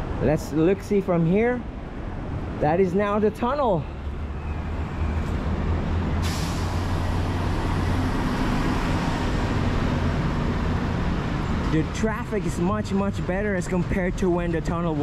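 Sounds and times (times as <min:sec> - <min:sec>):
traffic engine rumble: 0:00.0 - 0:15.0
sudden hiss: 0:06.2 - 0:07.2.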